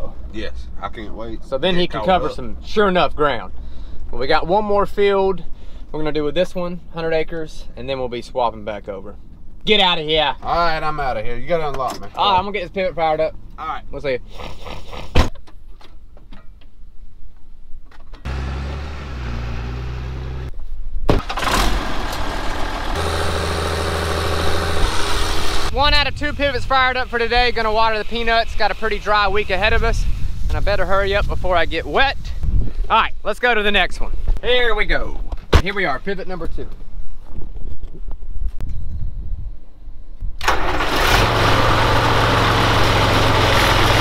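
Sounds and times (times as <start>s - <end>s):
stationary engine running: 21.4s - 25.7s, 40.8s - 44.0s.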